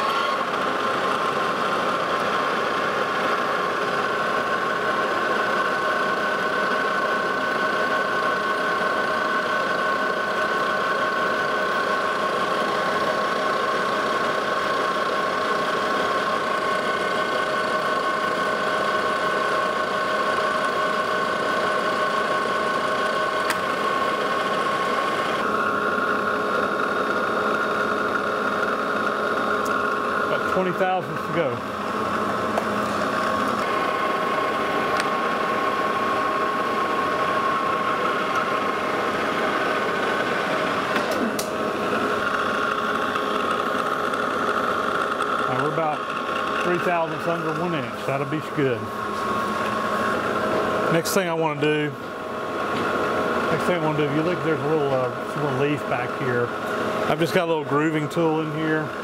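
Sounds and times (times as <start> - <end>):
metal lathe whining: 0.0 - 59.0.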